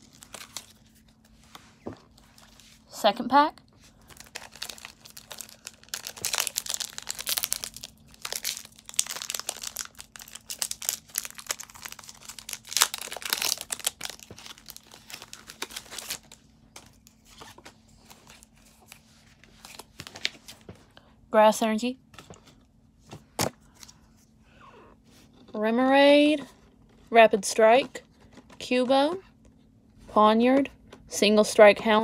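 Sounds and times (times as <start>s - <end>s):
foil pack tearing and crinkling: 0.0s - 0.8s, 4.0s - 16.4s.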